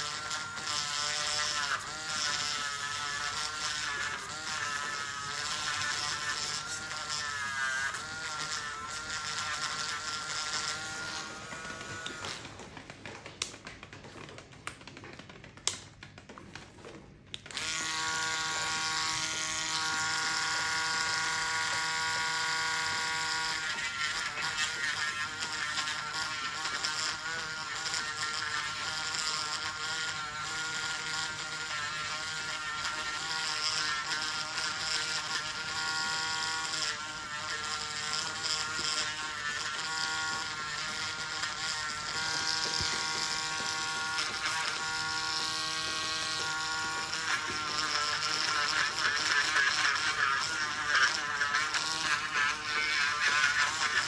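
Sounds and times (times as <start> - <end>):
burr grinding toenail: 0.0 - 14.8, 16.8 - 54.0
nail drill whining: 0.0 - 14.8, 16.8 - 54.0.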